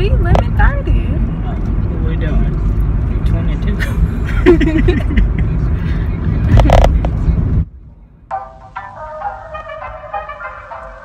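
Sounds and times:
car cabin rumble: 0:00.0 - 0:03.8, 0:04.5 - 0:07.6.

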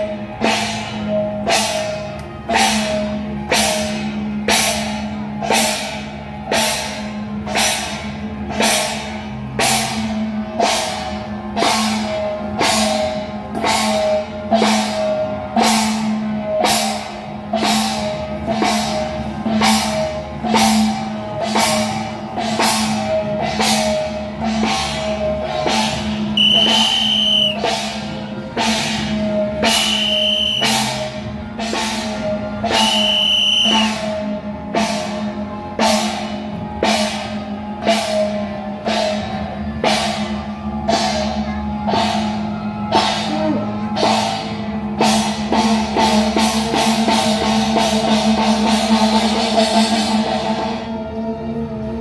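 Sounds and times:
drum strikes: 0:00.0 - 0:50.9
steady drone: 0:00.0 - 0:52.0
high held note: 0:26.4 - 0:27.7.

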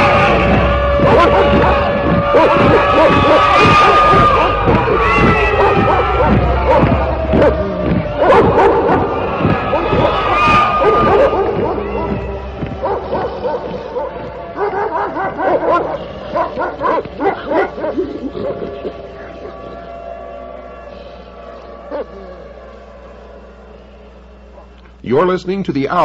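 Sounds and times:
dog-like yelping cries: 0:00.0 - 0:19.0
low hum: 0:00.0 - 0:25.0.

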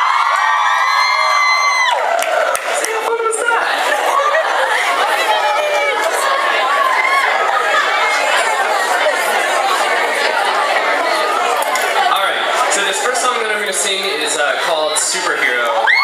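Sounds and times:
audience chatter: 0:00.0 - 0:16.0.

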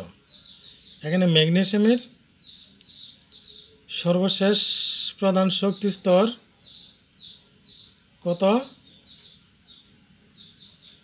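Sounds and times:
faint bird chirping: 0:00.0 - 0:11.0.

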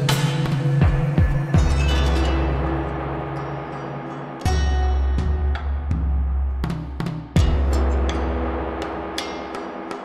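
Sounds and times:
sharp percussive strikes: 0:00.0 - 0:10.0.

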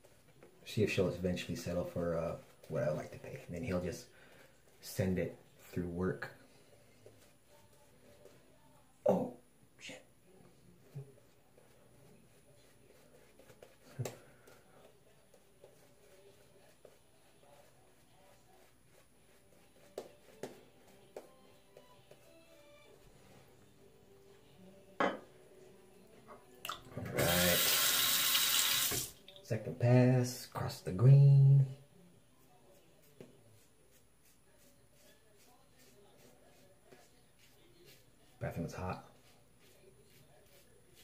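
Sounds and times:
sink tap running: 0:27.2 - 0:29.1.

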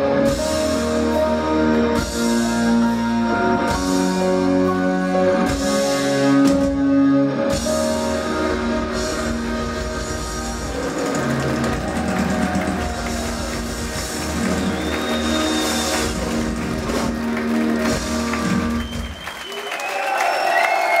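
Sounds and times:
metal band playing live: 0:00.0 - 0:19.1
crowd cheering and applauding: 0:08.4 - 0:21.0.

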